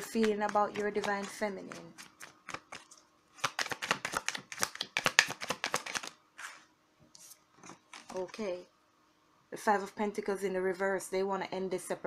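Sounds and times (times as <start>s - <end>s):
cards shuffling: 0.0s - 6.6s, 7.2s - 8.4s.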